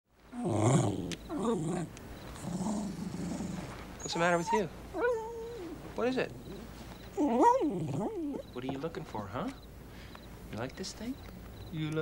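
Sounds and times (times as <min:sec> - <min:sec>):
small dog growling: 0:00.3 - 0:08.5.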